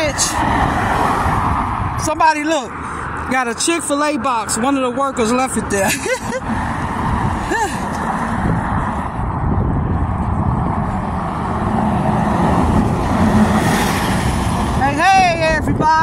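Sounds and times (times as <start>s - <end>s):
passing cars: 0.0s - 16.0s.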